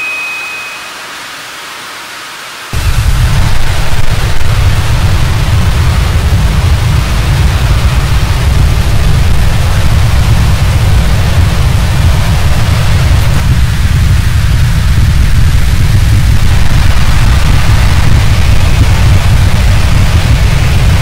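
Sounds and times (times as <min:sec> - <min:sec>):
even hiss: 0:02.6 - 0:21.0
loud low rumble: 0:02.8 - 0:21.0.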